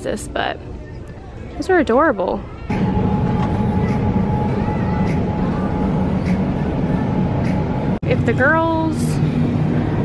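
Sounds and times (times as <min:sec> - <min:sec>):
faint constant whine: 0:00.0 - 0:10.0
refrigerated display cases humming: 0:00.0 - 0:10.0.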